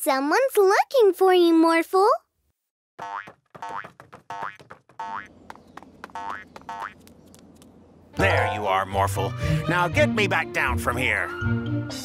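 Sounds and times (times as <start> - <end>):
cartoon boing spring effects: 3.0 - 3.8
soft background music: 8.2 - 12.0.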